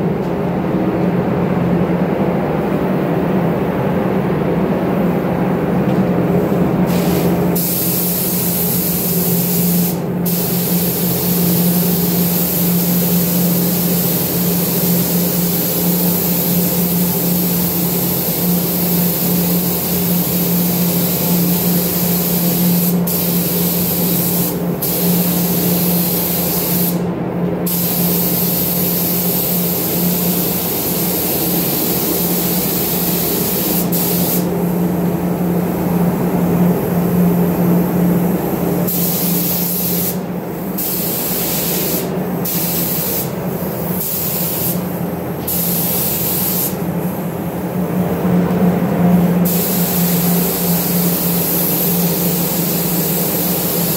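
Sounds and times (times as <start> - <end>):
steady low hum: 0.0 - 53.9
paint spray gun hissing: 6.9 - 27.0, 27.7 - 34.5, 38.8 - 47.2, 49.4 - 53.9.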